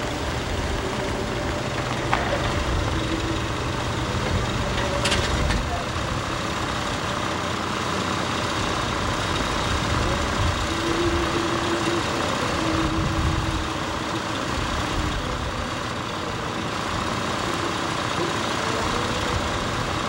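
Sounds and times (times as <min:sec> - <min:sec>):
car engine idling: 0:00.0 - 0:20.0
constant hiss: 0:00.0 - 0:20.0.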